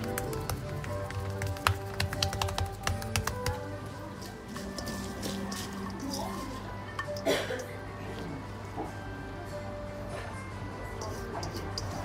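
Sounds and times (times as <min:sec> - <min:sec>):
sharp irregular taps: 0:00.0 - 0:03.6
background music: 0:00.0 - 0:12.0.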